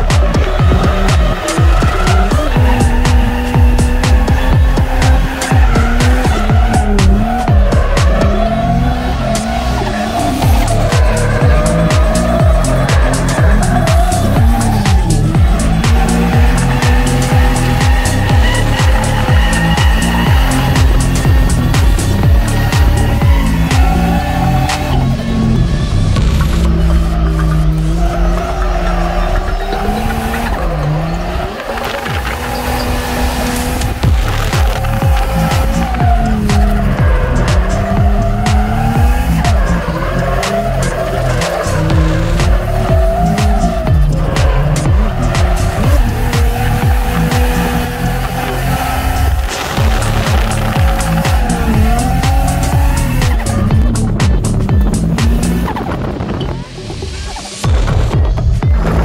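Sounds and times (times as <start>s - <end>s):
car engine revving hard: 0.0s - 56.7s
music track: 0.0s - 59.0s
tyres squealing: 0.0s - 59.0s.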